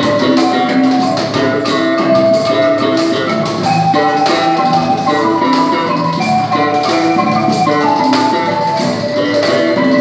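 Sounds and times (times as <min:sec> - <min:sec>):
cajon beat: 0:00.0 - 0:10.0
electric bass guitar: 0:00.0 - 0:10.0
marimba melody: 0:00.0 - 0:10.0.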